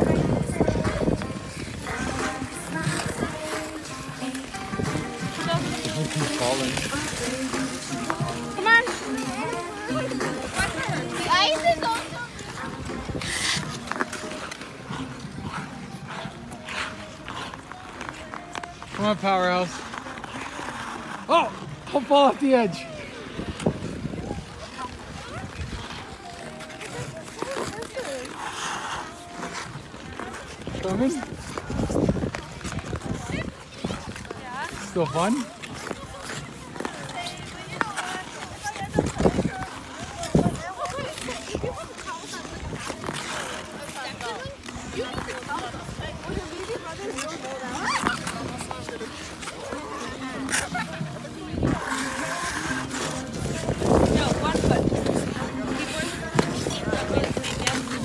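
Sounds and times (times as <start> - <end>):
faint voices talking: 0.0 - 58.0
ice skate blades scraping on ice: 0.0 - 58.0.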